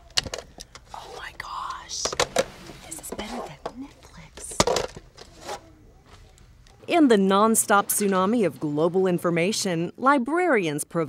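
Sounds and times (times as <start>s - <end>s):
plastic cases clicking: 0.0s - 0.9s
faint whispered voice: 0.9s - 2.2s, 2.8s - 4.6s.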